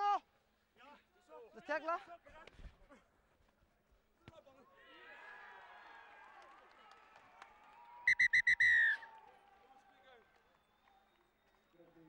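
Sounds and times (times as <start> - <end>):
players calling out: 8.1 - 9.0
referee's whistle blowing: 8.1 - 9.0.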